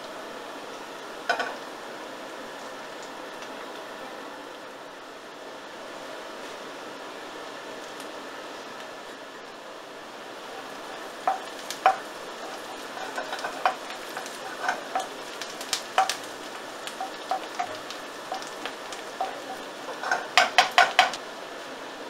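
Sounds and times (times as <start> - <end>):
onion sizzling in a frying pan: 0.0 - 22.0
wooden spoon knocking a pan: 11.2 - 21.2.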